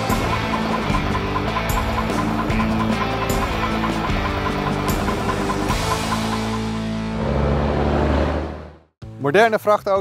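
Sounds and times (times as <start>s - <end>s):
diesel truck engine droning: 0.0s - 8.9s
background music: 0.0s - 10.0s.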